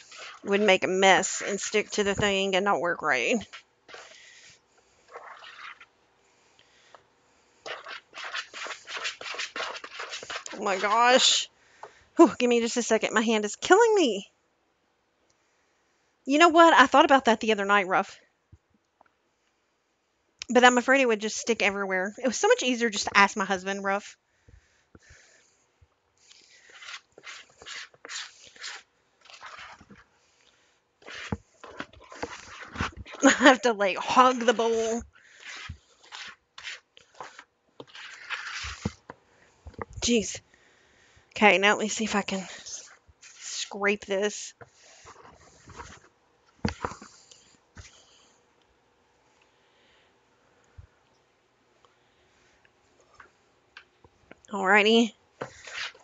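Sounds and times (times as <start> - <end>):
metal spoon scraping dough in bowl: 0.0 - 2.5, 7.7 - 11.4, 26.3 - 30.0, 31.0 - 39.1.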